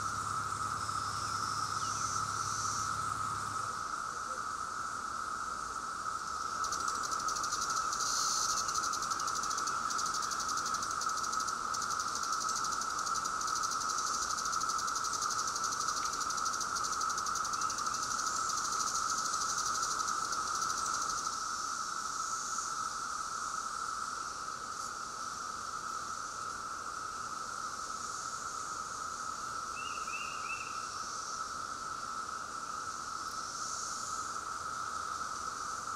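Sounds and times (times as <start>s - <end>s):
cicadas droning: 0.0s - 35.9s.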